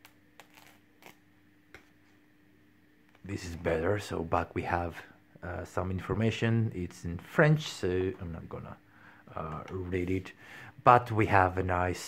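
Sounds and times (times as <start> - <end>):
paper crinkling: 0.0 - 1.2.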